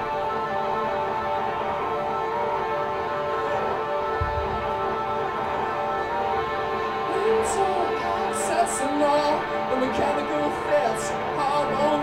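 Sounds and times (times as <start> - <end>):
band playing droning tones: 0.0 - 12.0.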